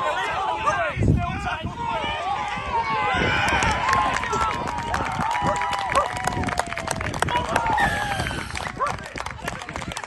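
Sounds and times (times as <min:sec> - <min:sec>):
men calling and shouting: 0:00.0 - 0:04.8.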